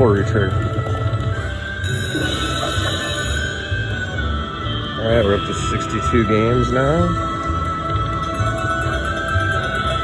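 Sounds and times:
slot machine bonus music: 0:00.0 - 0:10.0.

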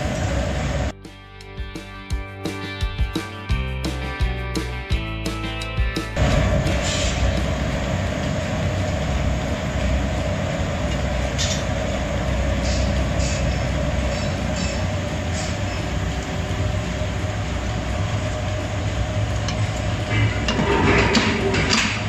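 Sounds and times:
gas forge and machinery rumble: 0:00.0 - 0:00.9, 0:06.1 - 0:22.0.

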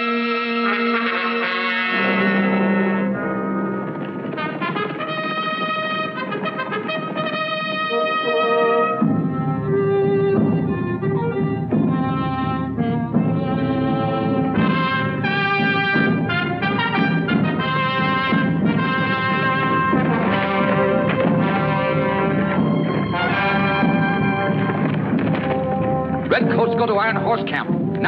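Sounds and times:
orchestral music with brass chords: 0:00.0 - 0:28.0.

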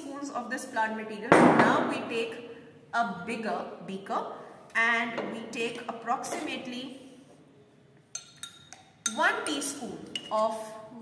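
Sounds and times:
teaspoon clinking on glass: 0:08.2 - 0:09.3.

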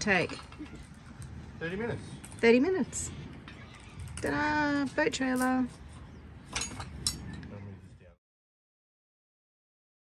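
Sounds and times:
outdoor background noise: 0:00.0 - 0:08.2.

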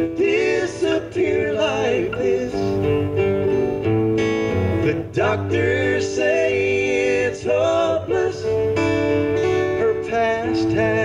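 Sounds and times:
person singing: 0:00.0 - 0:03.0, 0:04.8 - 0:11.0
acoustic guitars strummed: 0:00.0 - 0:11.0.

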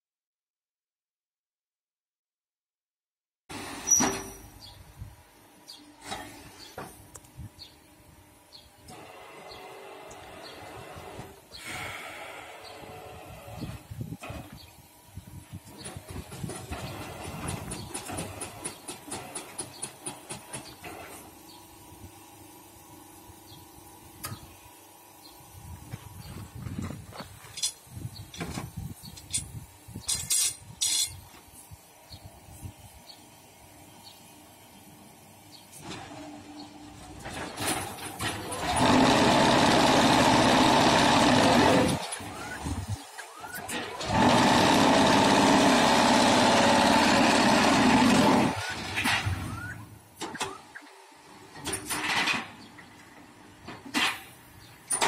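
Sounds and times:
clanks and clicks of moving parts: 0:15.6 - 0:21.4, 0:27.4 - 0:31.5, 0:37.0 - 0:50.9, 0:51.5 - 0:55.0
loud steady machine noise: 0:35.8 - 0:49.3.

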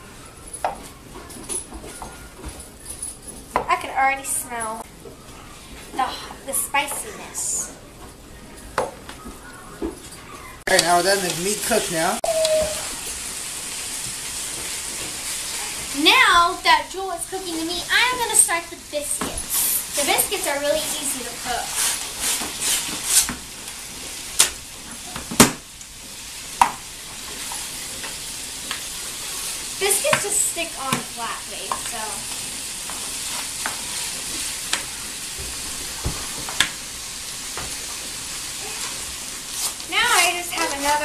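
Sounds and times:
faint sizzling: 0:03.6 - 0:41.0
spatula scraping in skillet: 0:13.0 - 0:24.2, 0:27.1 - 0:36.5, 0:37.9 - 0:41.0.

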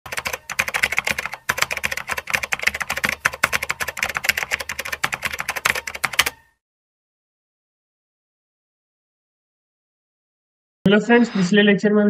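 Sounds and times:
rapid keystroke clicks: 0:00.1 - 0:06.4.

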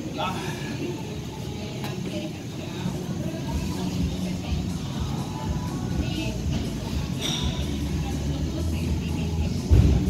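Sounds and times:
low rumble in a gym: 0:00.0 - 0:10.0.

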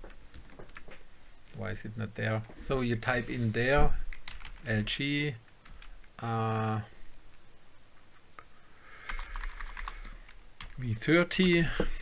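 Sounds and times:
computer keyboard typing: 0:00.0 - 0:01.0, 0:04.1 - 0:04.7, 0:09.0 - 0:11.6.

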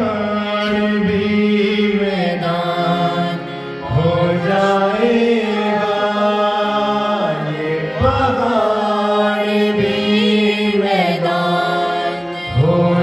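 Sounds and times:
harmonium chords: 0:00.0 - 0:13.0
man singing: 0:00.0 - 0:13.0.

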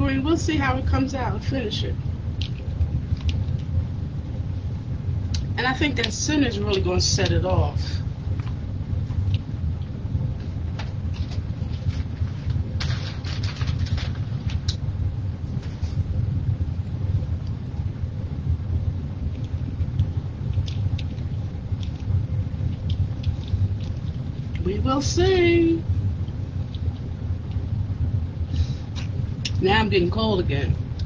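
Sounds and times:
low background rumble: 0:00.0 - 0:31.0.

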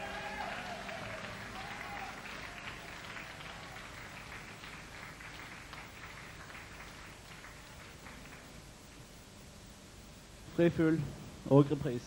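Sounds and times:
audience applause: 0:00.0 - 0:08.6.

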